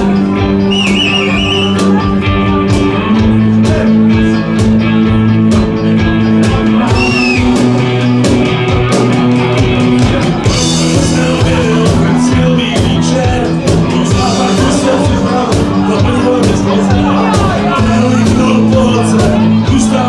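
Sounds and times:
drum kit beat: 0:00.0 - 0:20.0
electric guitars: 0:00.0 - 0:20.0.

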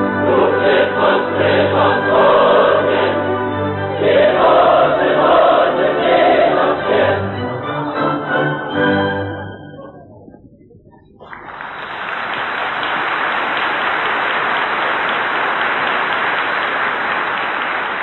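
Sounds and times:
opera chorus singing: 0:00.0 - 0:09.6
orchestra playing: 0:00.0 - 0:10.0.

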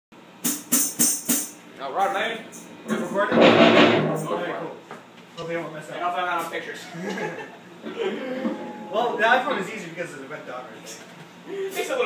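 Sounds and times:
drum kit strikes: 0:00.4 - 0:01.6, 0:02.8 - 0:04.3.

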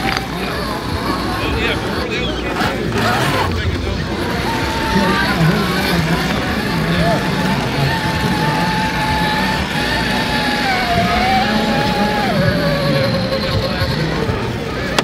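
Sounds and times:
electric motor whining: 0:00.0 - 0:15.0
voices murmuring: 0:00.0 - 0:15.0.

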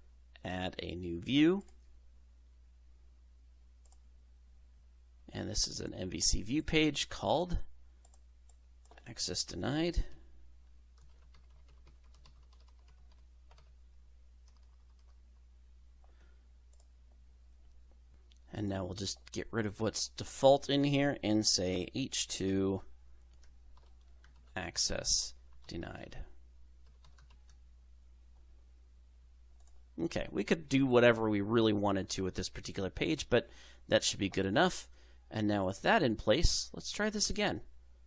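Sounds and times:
low steady hum: 0:00.0 - 0:38.0
typing on computer keyboard: 0:11.0 - 0:13.7, 0:14.5 - 0:15.2, 0:26.8 - 0:27.6.

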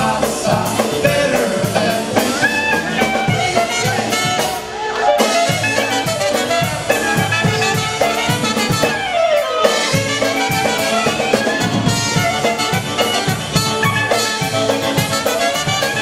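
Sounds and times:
accordion: 0:00.0 - 0:16.0
brass: 0:00.0 - 0:16.0
drum kit beat: 0:00.0 - 0:16.0
polka band playing: 0:00.0 - 0:16.0.

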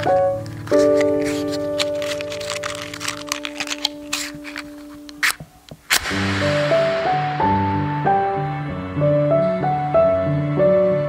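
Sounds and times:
piano chord ringing: 0:06.0 - 0:11.0.

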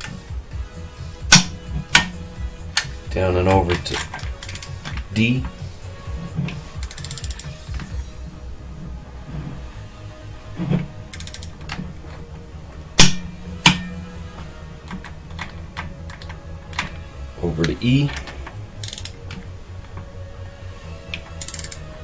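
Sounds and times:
torque wrench clicks: 0:03.8 - 0:05.0, 0:06.8 - 0:07.9, 0:11.1 - 0:11.8, 0:18.2 - 0:19.4, 0:21.1 - 0:21.9
torque wrench ratcheting: 0:03.8 - 0:05.0, 0:06.6 - 0:07.9, 0:11.1 - 0:11.8, 0:18.8 - 0:19.4, 0:21.2 - 0:21.9.

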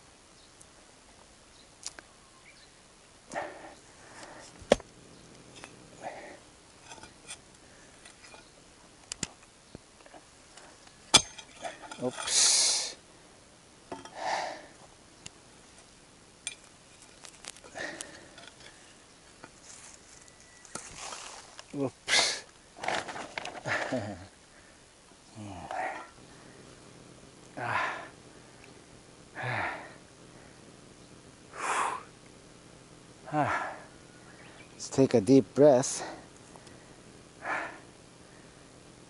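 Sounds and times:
heavy breaths and grunts: 0:03.3 - 0:04.6, 0:05.9 - 0:06.5, 0:14.0 - 0:14.8, 0:17.7 - 0:18.6, 0:22.0 - 0:22.5, 0:23.5 - 0:24.7, 0:25.3 - 0:26.6, 0:27.5 - 0:28.2, 0:29.3 - 0:30.0, 0:31.5 - 0:32.2, 0:33.2 - 0:34.0, 0:35.8 - 0:36.4, 0:37.4 - 0:37.9
scraping and rustling: 0:19.5 - 0:21.7, 0:22.8 - 0:23.9.

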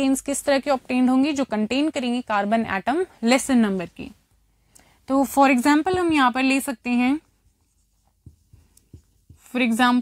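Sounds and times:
marker pen writing on whiteboard: 0:05.4 - 0:10.0.

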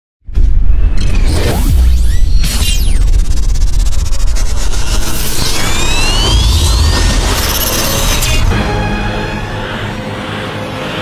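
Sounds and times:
deep bass rumble: 0:00.3 - 0:10.0
whoosh: 0:00.3 - 0:10.1.

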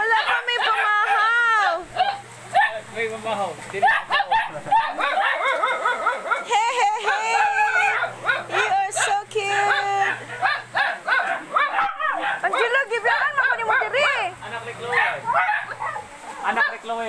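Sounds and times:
dogs whining and yipping: 0:03.8 - 0:14.3, 0:14.9 - 0:16.8.

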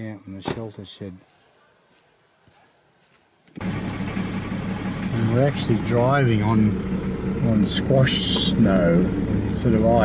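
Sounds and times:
car engine hum from inside: 0:03.6 - 0:10.0.

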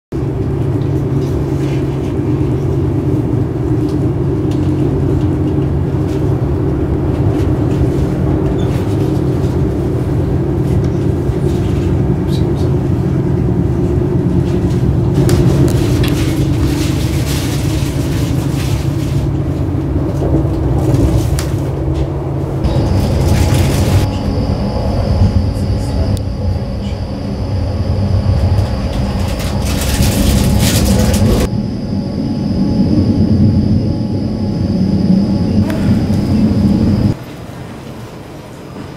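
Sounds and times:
train coach running rumble: 0:00.2 - 0:38.9.

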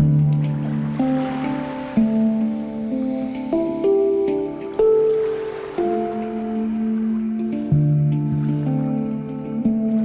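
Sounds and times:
deep low handpan note: 0:00.0 - 0:10.0
handpan melody: 0:00.0 - 0:10.0.

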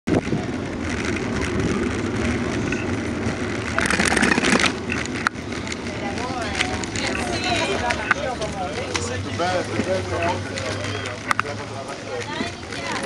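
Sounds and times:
bicycle rolling on asphalt: 0:00.1 - 0:13.0
voices in background: 0:05.0 - 0:13.0.

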